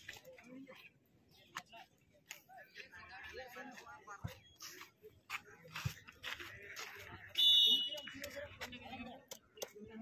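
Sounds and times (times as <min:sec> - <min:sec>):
faint crowd chatter: 0:00.0 - 0:10.0.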